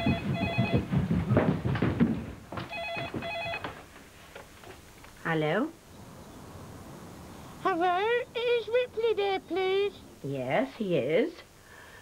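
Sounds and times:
telephone double ringing: 0:00.0 - 0:00.9, 0:02.7 - 0:03.8
low thuds and knocks: 0:00.0 - 0:03.8.

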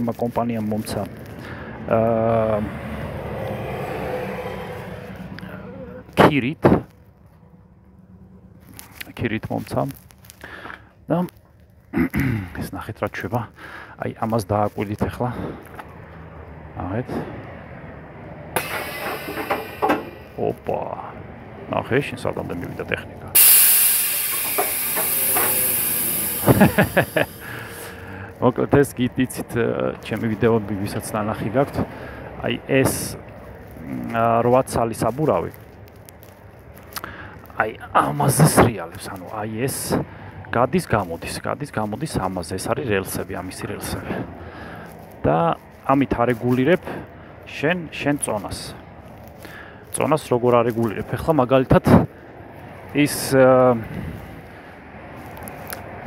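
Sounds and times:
vehicle passing on road: 0:00.0 - 0:11.9, 0:13.9 - 0:56.0
compressed air hissing: 0:18.6 - 0:20.2, 0:23.4 - 0:28.3
short clicks: 0:23.4 - 0:28.0.

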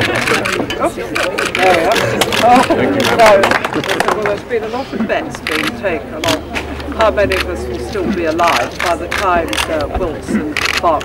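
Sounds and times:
people talking over one another: 0:00.0 - 0:11.0.

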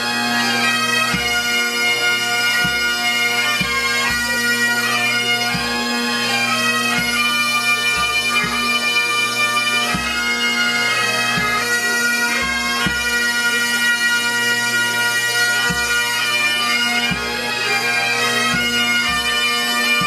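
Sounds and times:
bagpipes playing: 0:00.0 - 0:20.0.

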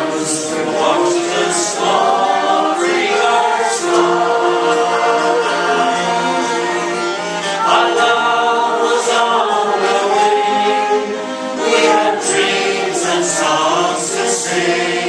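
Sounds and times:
bowed fiddle: 0:00.0 - 0:15.0
group singing folk ballad: 0:00.0 - 0:15.0.

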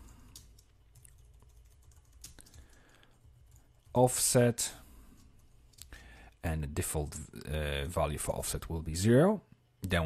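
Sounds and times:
keyboard typing: 0:00.0 - 0:04.0
low background hum: 0:00.0 - 0:10.0.

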